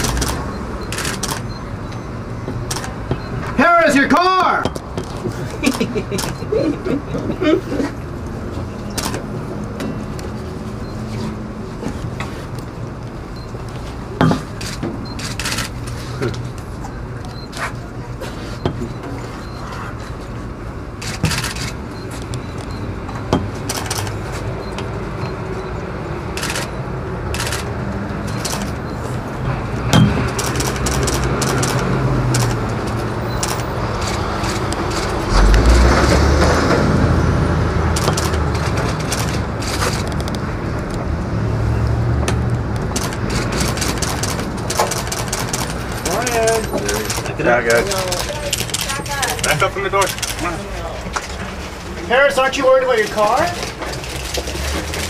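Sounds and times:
sharp clicks: 0.0s - 2.0s, 27.3s - 28.8s, 30.0s - 35.7s, 37.9s - 41.0s, 42.3s - 50.4s
traffic noise: 0.0s - 55.0s.

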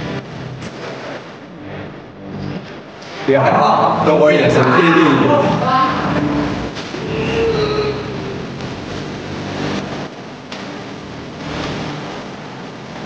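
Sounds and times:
steady rumbling: 0.0s - 13.0s.

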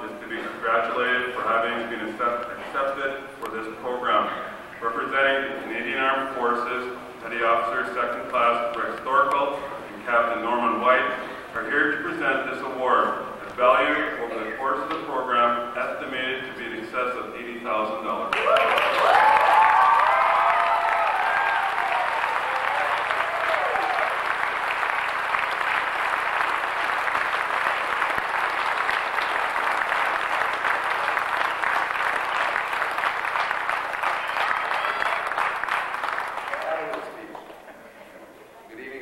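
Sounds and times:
audience applauding: 18.3s - 37.7s.

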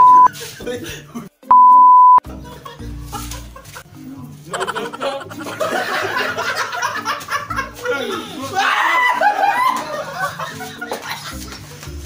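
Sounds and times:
censor bleep: 0.0s - 0.3s, 1.5s - 2.2s.

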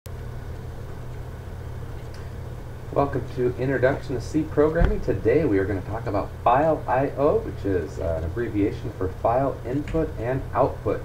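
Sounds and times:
low hum with faint hiss: 0.1s - 11.0s.

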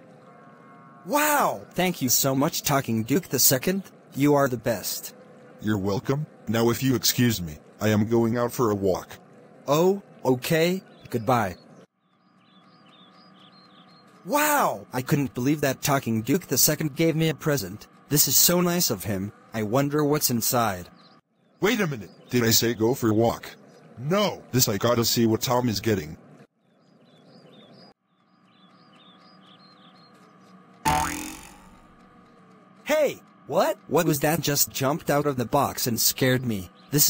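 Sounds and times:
faint birds chirping: 0.0s - 37.0s
cartoon spring boing: 30.9s - 31.8s.

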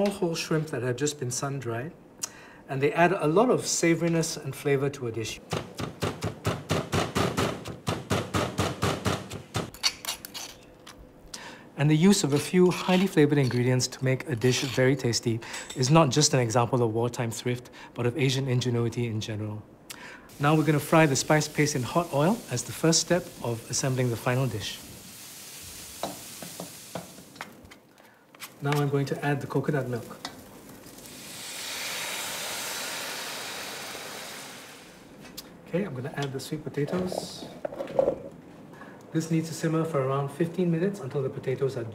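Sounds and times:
pestle pounding in a mortar: 5.5s - 9.7s
coconut milk sizzling in oil: 20.3s - 27.5s, 29.3s - 35.1s.

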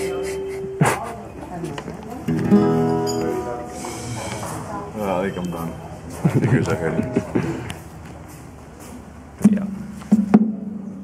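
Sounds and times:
guitar strings struck: 2.3s - 4.5s.

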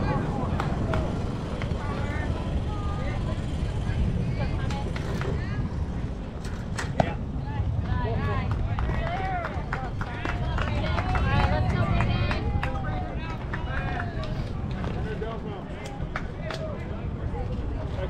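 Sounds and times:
wind rumble on microphone: 0.0s - 18.0s.

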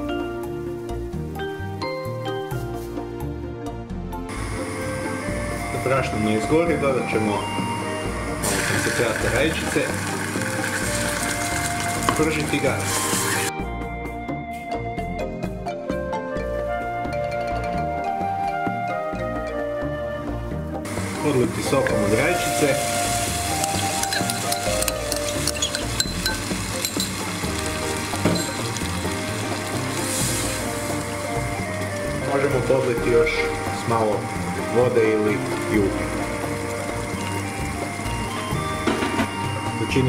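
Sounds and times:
quiet background music: 0.0s - 40.0s
roux sizzling in a pot: 4.3s - 13.5s, 20.9s - 40.0s
spoon clicking against pot: 24.0s - 27.1s.

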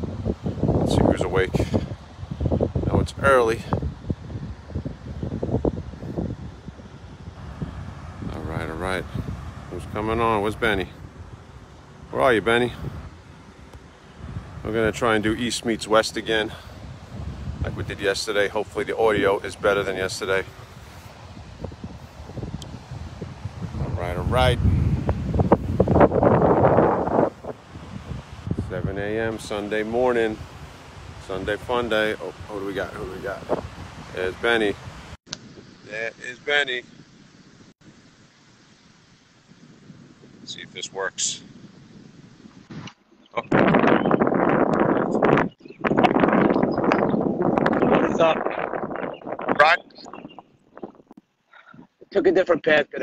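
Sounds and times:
wind buffeting microphone: 0.0s - 52.7s.

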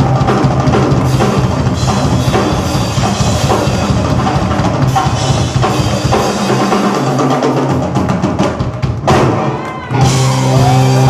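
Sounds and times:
fast drum strokes: 0.0s - 11.0s
loud drum hit: 0.0s - 11.0s.

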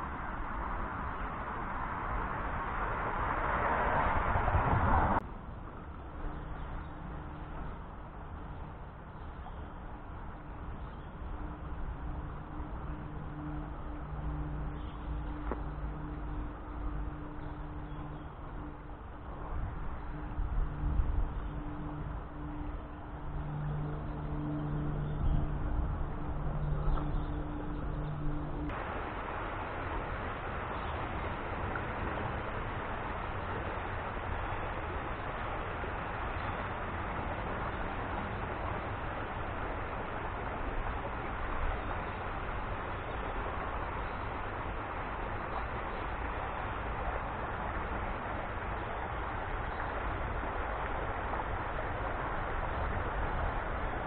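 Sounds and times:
river rushing over riffle: 0.0s - 6.2s, 11.3s - 54.0s
low two-tone hum with rumble: 0.0s - 54.0s.

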